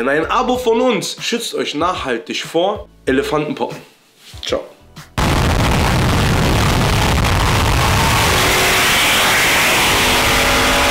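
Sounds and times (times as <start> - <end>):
car engine accelerating hard: 6.5 - 10.9.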